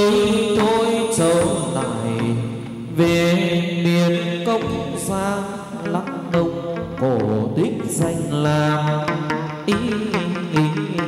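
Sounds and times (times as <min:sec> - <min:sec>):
percussion: 0:00.0 - 0:11.0
person singing ornamented notes: 0:00.0 - 0:11.0.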